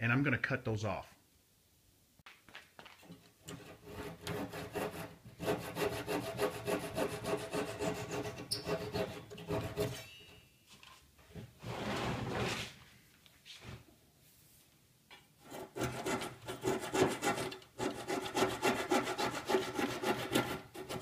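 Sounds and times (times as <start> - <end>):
hand saw strokes: 3.5 - 10.3, 15.4 - 21.0.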